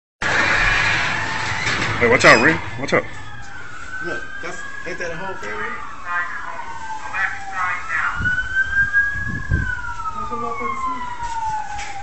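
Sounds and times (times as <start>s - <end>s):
steady rush of noise: 0.2s - 4.3s
police siren wailing: 0.2s - 12.0s.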